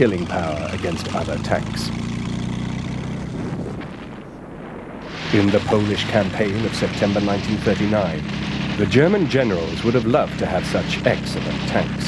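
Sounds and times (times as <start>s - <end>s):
tracked vehicle engine humming: 0.0s - 4.4s, 5.1s - 12.0s.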